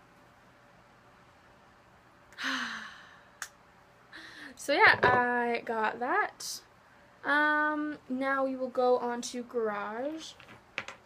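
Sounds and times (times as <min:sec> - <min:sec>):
girl sighing: 0:02.4 - 0:03.2.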